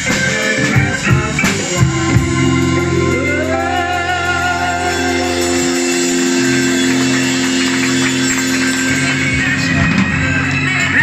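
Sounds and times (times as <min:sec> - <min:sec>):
held band chord: 0:00.0 - 0:09.8
hand percussion: 0:00.0 - 0:10.2
drum kit: 0:00.0 - 0:11.0.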